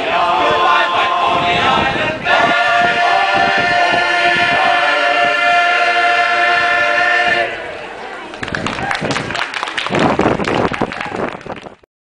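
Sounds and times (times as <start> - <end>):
men's chorus singing harmony: 0.0 - 7.7.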